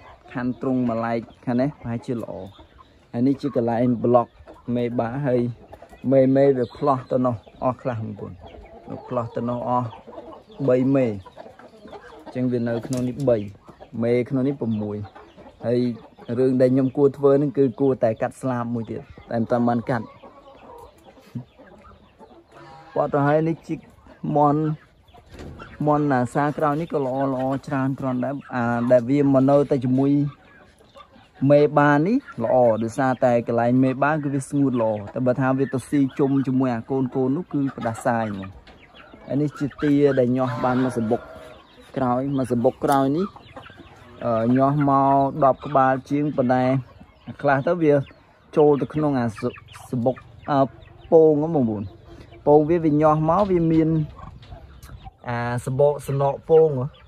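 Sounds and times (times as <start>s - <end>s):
chickens clucking: 0.0s - 57.0s
man talking: 0.3s - 10.0s, 10.6s - 11.4s, 12.3s - 20.2s, 22.6s - 24.8s, 25.7s - 30.4s, 31.4s - 38.6s, 39.3s - 43.4s, 44.2s - 54.2s, 54.8s - 57.0s.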